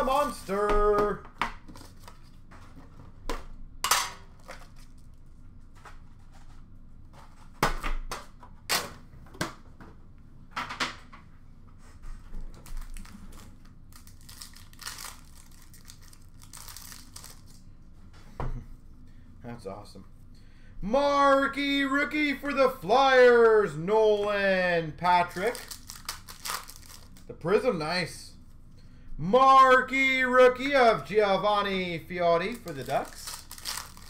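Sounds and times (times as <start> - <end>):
wrapper crinkling and tearing: 12.6 - 17.6, 25.3 - 27.3, 32.5 - 34.0.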